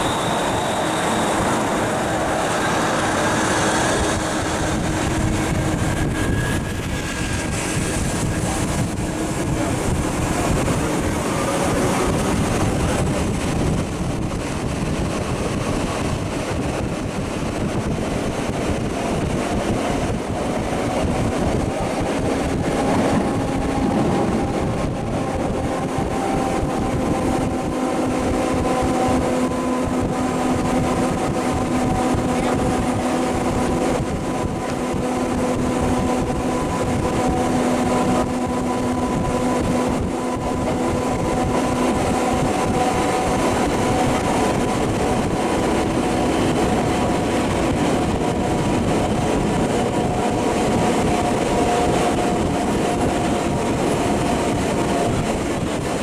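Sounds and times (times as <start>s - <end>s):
wheels rumbling on rail: 0.0s - 56.0s.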